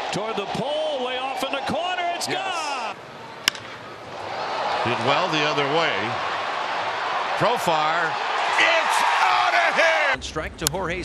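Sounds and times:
ballpark crowd noise: 0.0s - 10.2s
bat hitting baseball: 3.4s - 3.9s.

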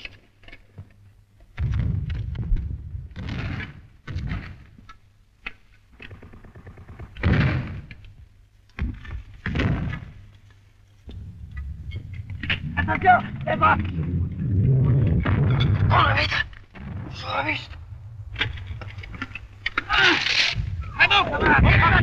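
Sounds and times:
sharp cracks: 9.4s - 22.0s
low rumble: 11.0s - 22.0s.

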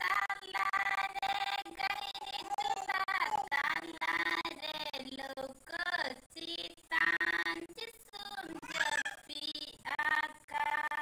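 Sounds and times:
woman singing unaccompanied: 0.0s - 11.0s.

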